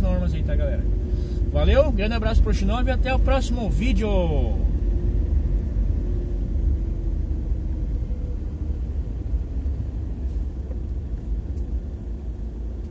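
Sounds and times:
van rumbling on wet street: 0:00.0 - 0:12.9.

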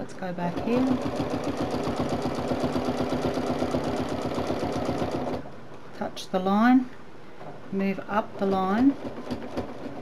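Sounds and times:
sewing machine stitching: 0:00.5 - 0:05.5, 0:08.9 - 0:10.0.

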